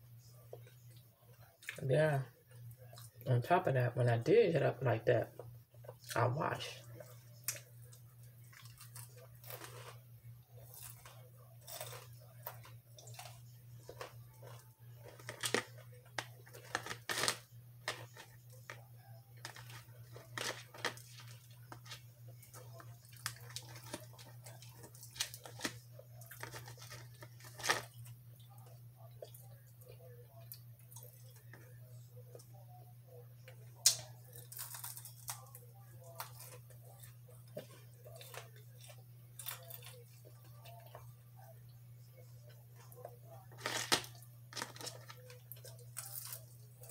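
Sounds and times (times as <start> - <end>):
person chewing: 6.9 - 31.6, 33.5 - 41.5, 42.4 - 46.9.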